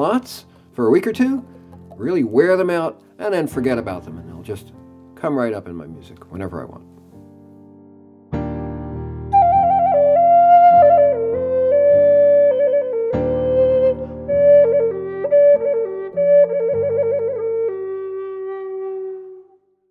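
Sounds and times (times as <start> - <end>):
flute melody with trills: 9.3 - 19.7.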